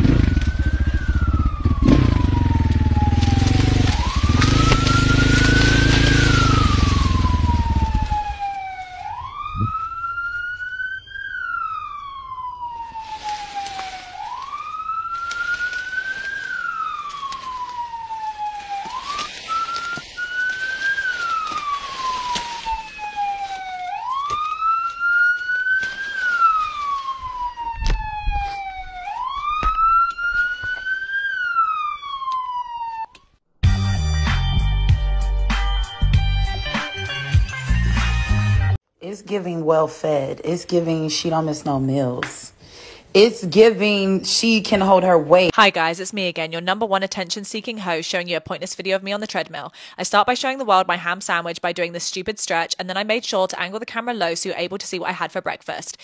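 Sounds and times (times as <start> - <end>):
motorcycle engine running: 0.0 - 8.5
police siren wailing: 0.0 - 33.4.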